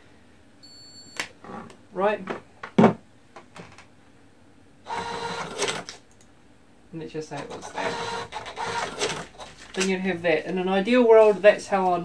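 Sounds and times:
receipt printer whirring: 4.9s - 5.9s, 7.4s - 9.5s.

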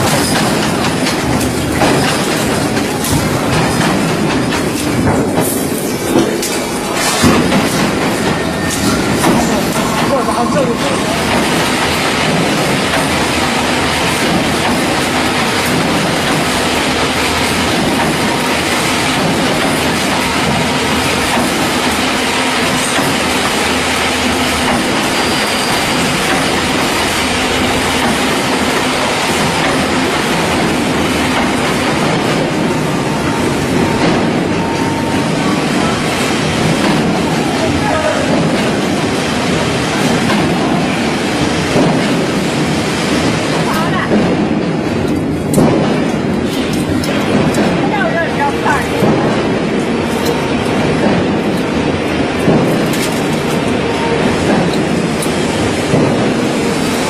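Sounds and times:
wire mesh machine clattering: 0.0s - 32.6s.

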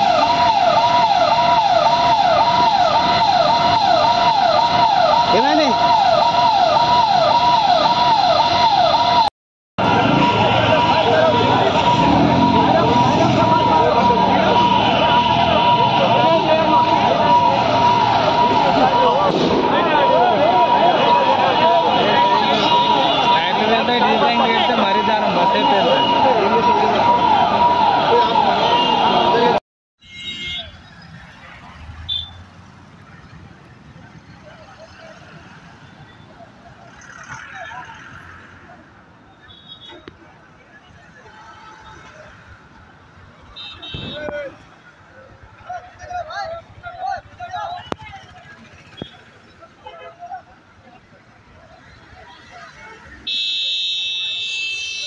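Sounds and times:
sirens wailing: 0.0s - 29.6s, 30.6s - 55.0s
quiet street noise: 0.0s - 55.0s
vehicle horn blast: 30.0s - 30.7s, 53.2s - 55.0s.

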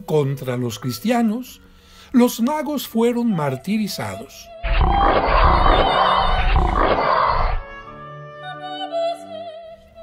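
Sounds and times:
lion roaring: 4.7s - 7.6s.

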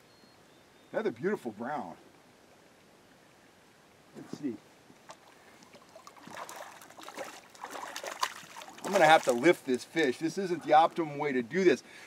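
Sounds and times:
water splashing and sloshing: 5.0s - 10.2s.

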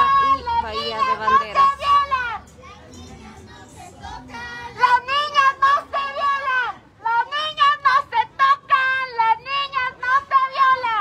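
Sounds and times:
woman chanting slogan: 0.0s - 2.4s, 4.1s - 11.0s.

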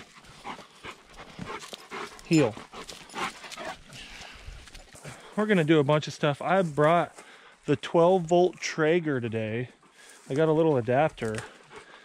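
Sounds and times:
dog panting: 0.0s - 5.3s, 9.7s - 12.0s.

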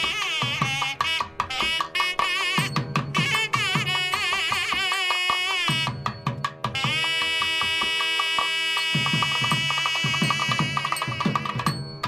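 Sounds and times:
drum strokes: 0.0s - 12.0s.

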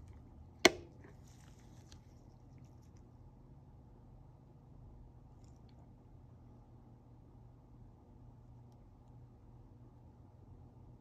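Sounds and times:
faint handling sounds: 0.0s - 3.3s.

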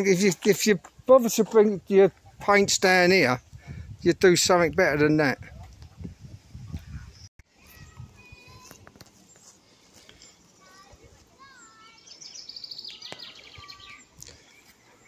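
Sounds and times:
songbirds chirping and whistling: 6.7s - 15.0s.

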